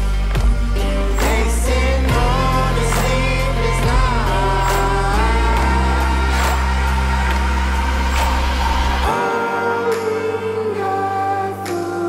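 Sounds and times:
sustained bass notes: 0.0 - 11.6
song with sung vocals: 0.0 - 12.0.

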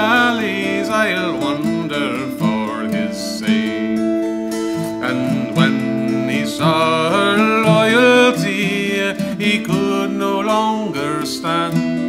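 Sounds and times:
acoustic guitar picked slowly: 0.0 - 12.0.

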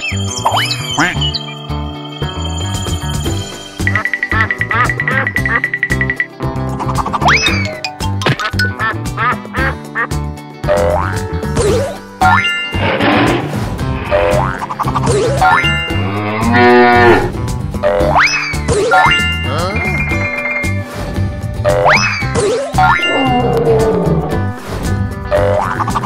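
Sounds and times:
cartoon background music: 0.0 - 26.0
cartoon cow mooing: 15.9 - 17.4, 23.0 - 24.5.

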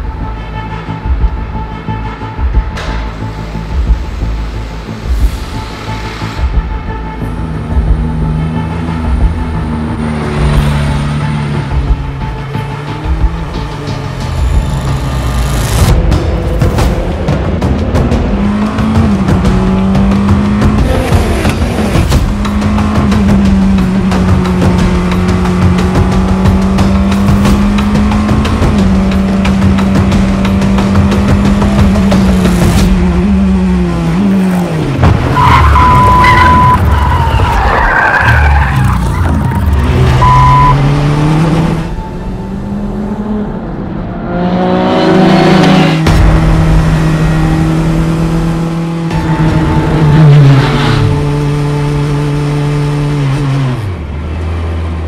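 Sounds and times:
race car engine revving: 7.2 - 37.5, 38.1 - 55.0
high-pitched squeals: 35.3 - 40.8.

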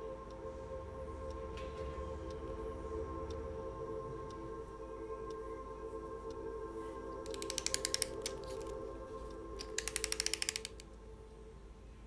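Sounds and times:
held musical drone: 0.0 - 12.0
clockwork ratchet clicking: 7.2 - 8.8, 9.6 - 10.9.

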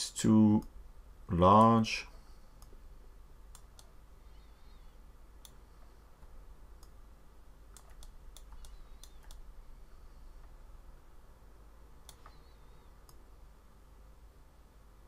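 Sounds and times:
low steady hum: 0.0 - 15.0
computer mouse clicks: 3.5 - 5.6, 7.7 - 9.5, 12.0 - 13.2.

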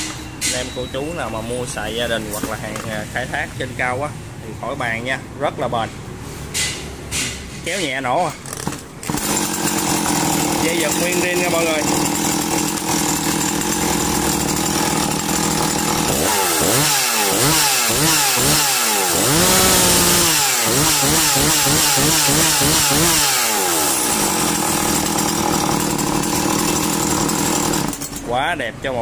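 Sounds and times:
chainsaw idling and revving: 8.5 - 28.4.

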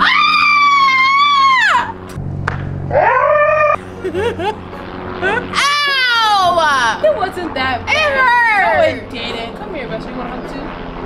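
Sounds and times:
woman screaming: 0.0 - 2.0, 5.2 - 6.9, 7.9 - 8.8.

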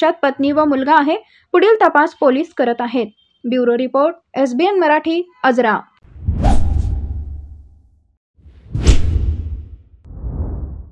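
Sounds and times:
whoosh sound effect: 6.1 - 7.6, 8.5 - 10.9.

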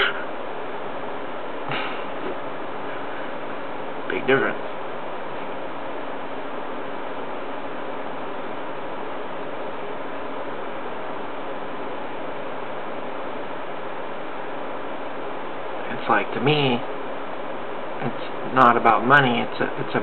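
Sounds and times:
background hiss: 0.0 - 20.0
faint low hum: 0.0 - 20.0.

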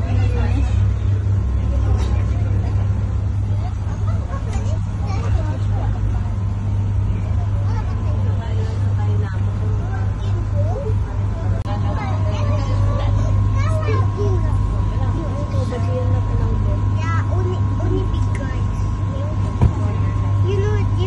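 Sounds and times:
motorboat engine droning: 0.0 - 21.0
passengers chattering: 0.0 - 21.0.

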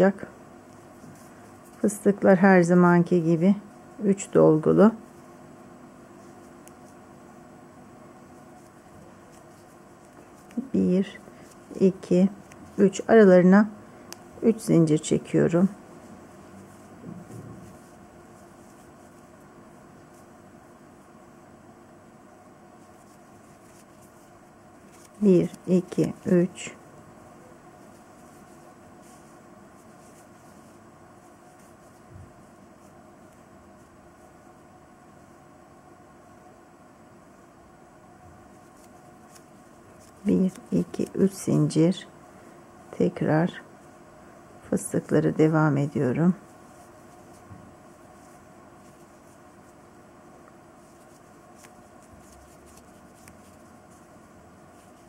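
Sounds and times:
yarn rustling on crochet hook: 0.0 - 21.6, 22.6 - 35.4, 37.8 - 42.1, 44.7 - 55.0
faint background hiss: 0.0 - 55.0
low room hum: 0.0 - 55.0
crochet hook ticks and yarn rustles: 9.3 - 10.8.

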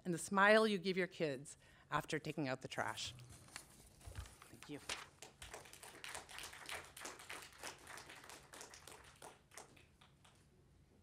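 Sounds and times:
light applause: 5.2 - 10.5.

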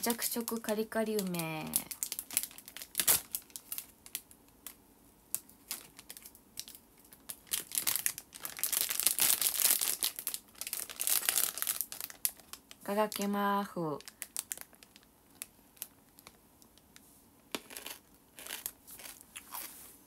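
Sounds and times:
plastic snack packet crinkling: 0.1 - 16.8, 17.5 - 19.7.

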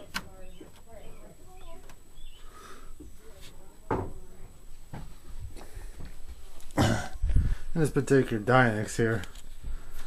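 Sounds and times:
light knocks and bumps: 3.0 - 6.4
rustling handling noise: 8.2 - 10.0.

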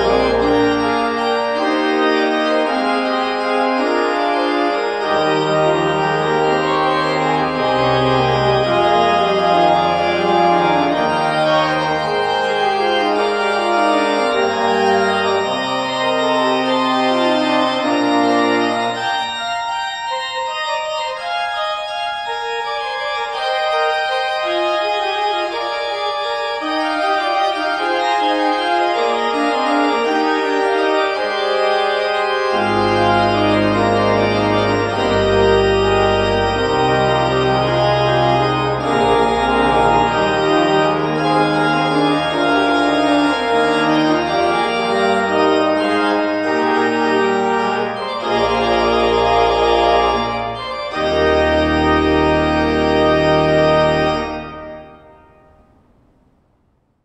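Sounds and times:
organ pedal bass notes: 0.0 - 55.9
pipe organ playing: 0.0 - 56.0.

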